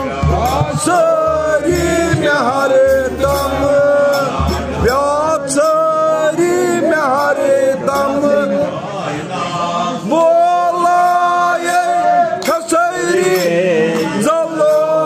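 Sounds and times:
low bass layer: 0.0 - 7.2
man singing slow melody: 0.0 - 9.3, 9.9 - 15.0
instrumental accompaniment: 0.0 - 9.8.

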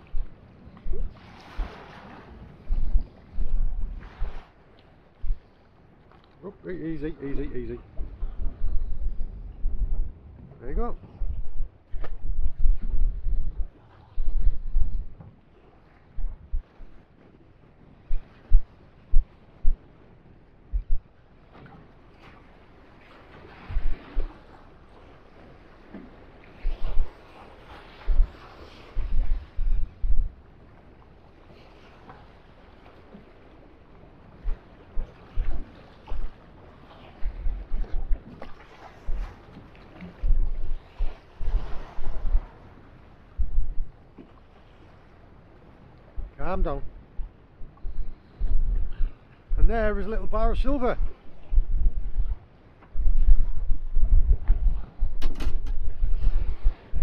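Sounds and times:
choppy sea washing: 0.0 - 57.0
wind buffeting microphone: 0.0 - 57.0.

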